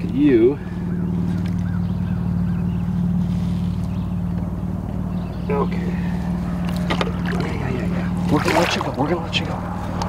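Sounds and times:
small boat motor idling: 0.0s - 10.0s.

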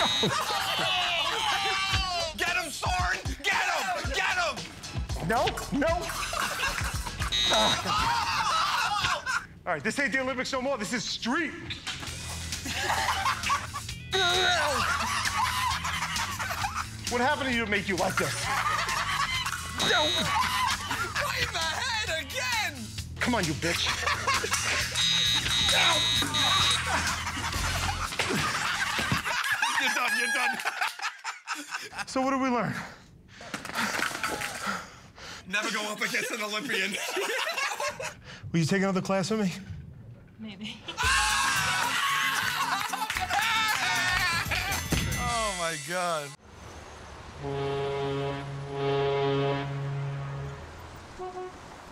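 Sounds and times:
fencing scoring machine buzzer: 0.0s - 0.6s, 7.3s - 8.1s, 19.8s - 20.5s, 24.7s - 27.1s
voices and laughter: 0.0s - 4.9s, 5.6s - 9.6s, 12.3s - 32.8s, 35.5s - 38.2s, 40.7s - 45.2s
background music: 0.0s - 29.4s, 41.0s - 46.4s, 47.4s - 51.5s
ship's horn blast: 25.0s - 26.8s, 47.3s - 51.9s.

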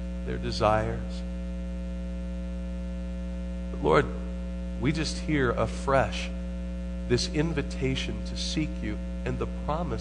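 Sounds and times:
electrical mains hum: 0.0s - 10.0s
man speaking: 0.2s - 1.3s, 3.7s - 6.4s, 7.1s - 10.0s.

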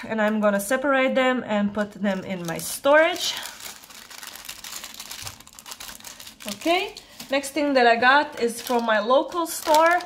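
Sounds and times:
plastic bag crinkling: 1.8s - 10.0s.

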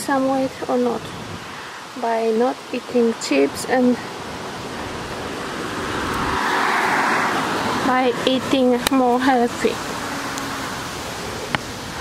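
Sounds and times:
car passing with tyre noise: 0.6s - 12.0s.

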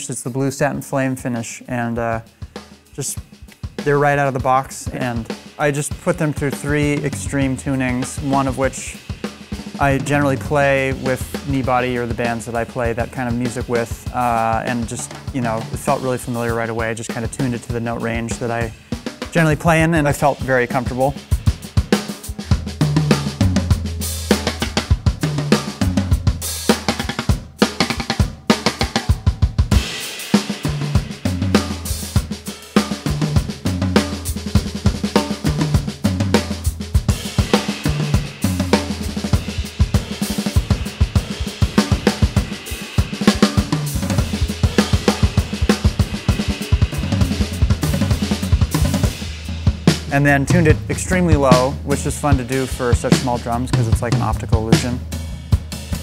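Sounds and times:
bass drum: 2.2s - 56.0s
snare drum: 2.5s - 55.0s
ride and crash cymbals: 4.8s - 16.0s, 29.7s - 53.4s
tom strokes: 37.5s - 53.6s.

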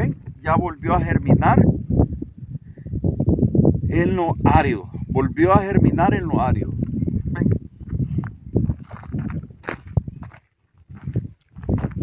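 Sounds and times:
footsteps on dry ground: 6.8s - 12.0s.

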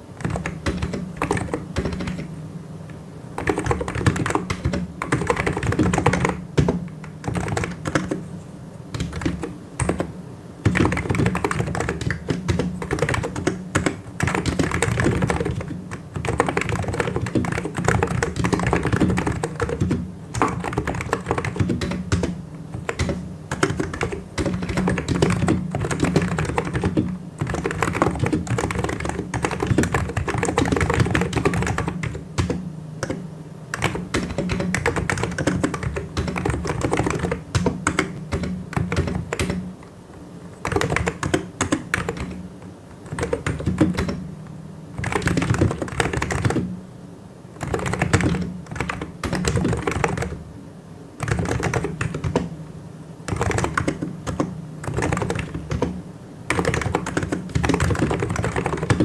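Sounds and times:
fast typing on keyboard: 0.2s - 2.3s, 3.4s - 8.3s, 8.9s - 39.7s, 40.6s - 42.4s, 43.0s - 44.2s, 45.0s - 46.7s, 47.6s - 50.4s, 51.2s - 52.5s, 53.3s - 59.0s.

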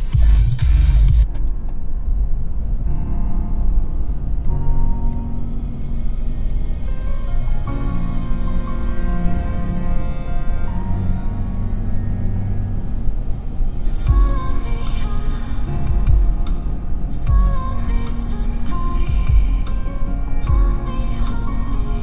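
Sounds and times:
electronic music in car: 0.0s - 22.0s
deep bass hits: 14.1s - 14.9s, 15.7s - 17.8s, 19.1s - 19.9s, 20.5s - 20.9s.

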